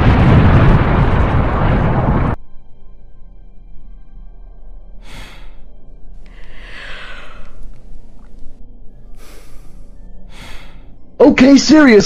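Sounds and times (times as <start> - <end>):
rumbling explosion: 0.0 - 2.4
quiet music: 2.4 - 12.0.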